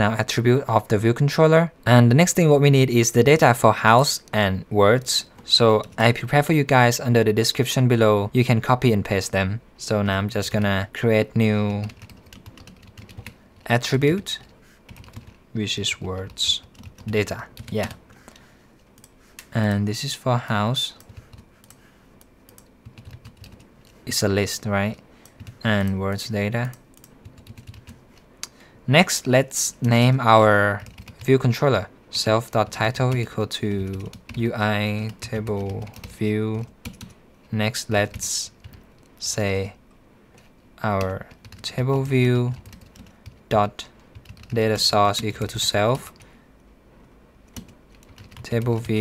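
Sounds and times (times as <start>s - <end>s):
computer keyboard keystrokes: 11.7s - 13.7s, 14.4s - 15.4s, 16.2s - 18.0s, 21.0s - 24.0s, 25.2s - 26.0s, 26.6s - 28.0s, 30.8s - 31.2s, 33.9s - 34.4s, 35.0s - 37.2s, 42.5s - 43.4s, 44.0s - 44.6s, 47.5s - 49.0s
keyboard keys clicking: 11.7s - 13.7s, 22.5s - 24.0s, 26.6s - 28.0s, 44.1s - 44.6s, 47.5s - 49.0s.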